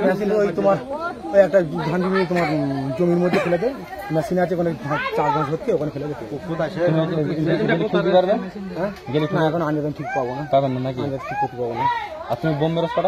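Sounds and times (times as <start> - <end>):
men talking: 0.0 - 13.0.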